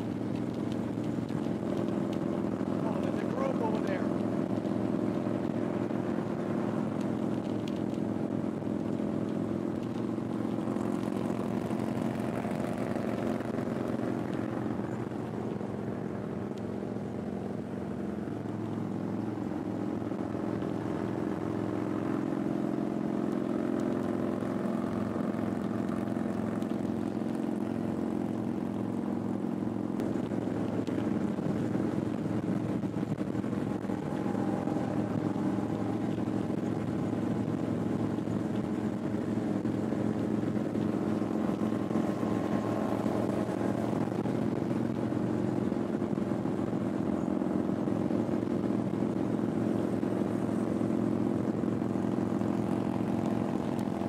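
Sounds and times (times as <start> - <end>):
motorcycle engine cruising: 0.0 - 54.0.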